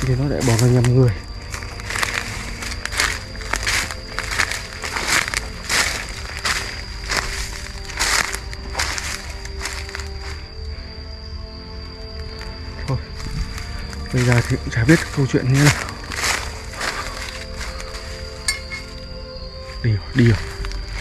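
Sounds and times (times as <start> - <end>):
footsteps crunching dry leaves: 0.0 - 10.6, 12.2 - 21.0.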